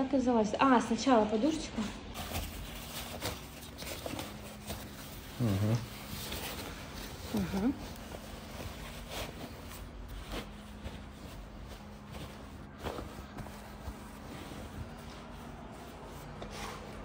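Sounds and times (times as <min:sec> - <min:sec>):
padded fabric rustling: 0:01.8 - 0:17.0.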